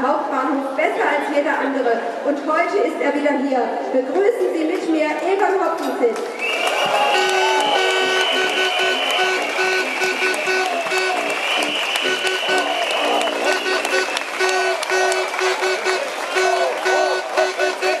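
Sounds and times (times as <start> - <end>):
crowd applauding and cheering: 6.2 - 18.0
short repeated tooting tones: 6.9 - 18.0
steady shrill tone: 7.0 - 18.0.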